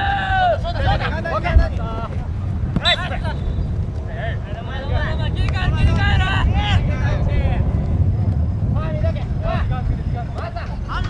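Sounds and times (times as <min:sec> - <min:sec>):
players shouting and calling: 0:00.0 - 0:11.0
steady low rumble: 0:00.0 - 0:11.0.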